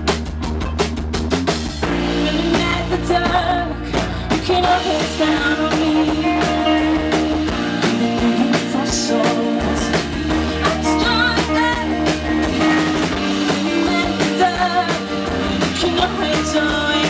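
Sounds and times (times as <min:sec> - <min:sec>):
bass guitar: 0:00.0 - 0:17.0
drum kit beat: 0:00.0 - 0:17.0
electric guitars: 0:00.0 - 0:17.0
woman singing: 0:02.0 - 0:17.0.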